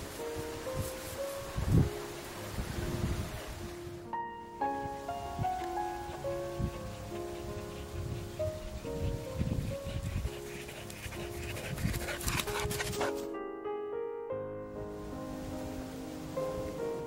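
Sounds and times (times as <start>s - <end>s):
gentle music: 0.0s - 17.0s
dog breathing: 5.8s - 13.2s.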